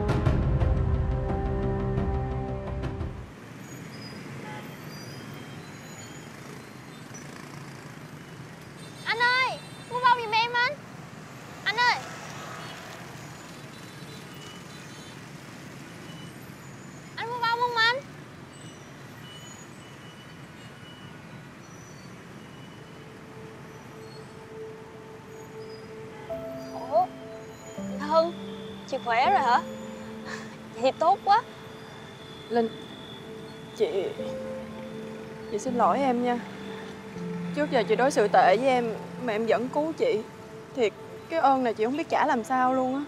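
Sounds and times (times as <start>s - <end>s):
distant road traffic: 0.0s - 43.0s.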